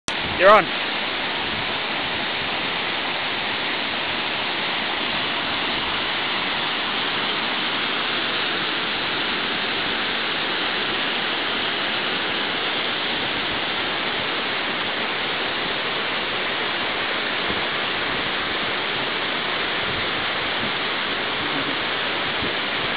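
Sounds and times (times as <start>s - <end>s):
waterfall rushing into pool: 0.1s - 22.9s.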